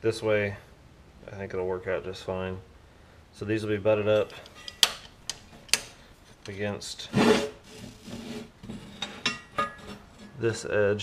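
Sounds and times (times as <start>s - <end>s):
steel scraping on steel table: 7.1s - 10.4s.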